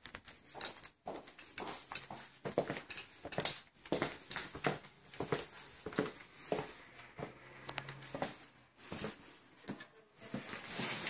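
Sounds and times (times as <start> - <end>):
footsteps on hardwood floor: 0.1 - 11.0.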